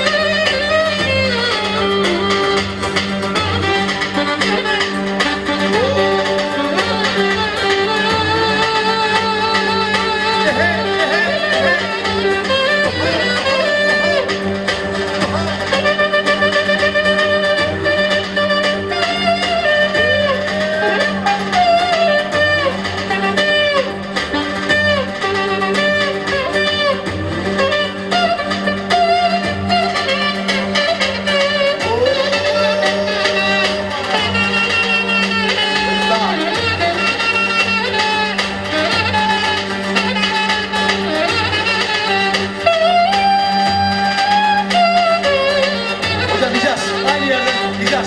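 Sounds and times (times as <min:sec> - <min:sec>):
drum beat: 0:00.0 - 0:48.0
saxophone melody: 0:00.0 - 0:48.0
steady low backing: 0:00.0 - 0:48.0.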